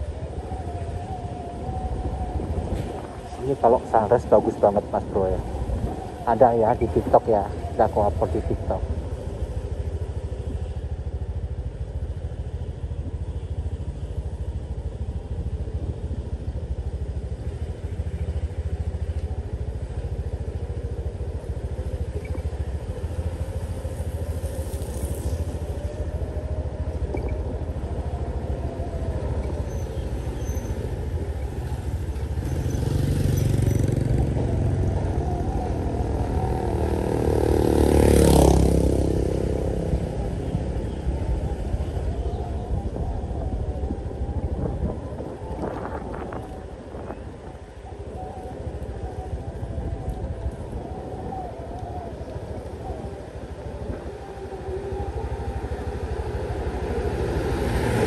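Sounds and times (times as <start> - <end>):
road and wind noise: 0.0 - 58.0.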